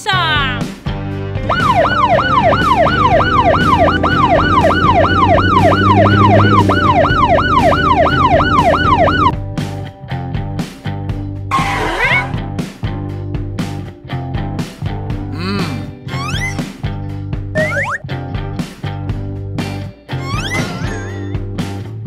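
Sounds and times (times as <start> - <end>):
background music: 0.0 - 22.0
police siren yelping: 1.5 - 9.3, 17.6 - 18.0.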